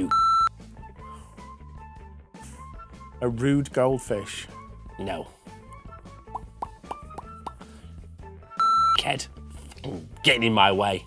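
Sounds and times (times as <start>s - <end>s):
electronic buzzer beep: 0.0s - 0.5s, 8.6s - 9.0s.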